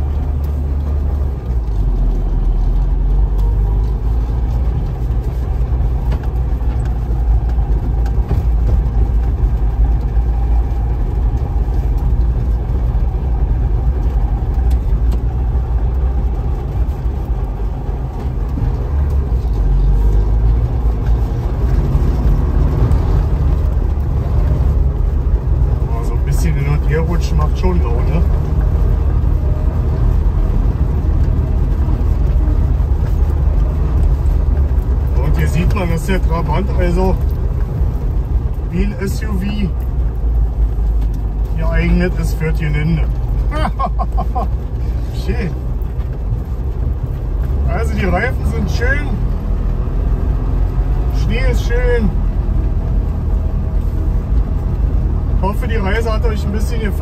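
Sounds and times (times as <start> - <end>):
car engine droning: 0.0 - 57.0.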